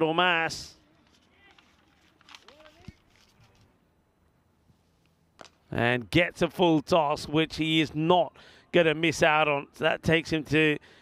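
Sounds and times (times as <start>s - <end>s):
faint indistinct voices: 0.6s - 3.8s.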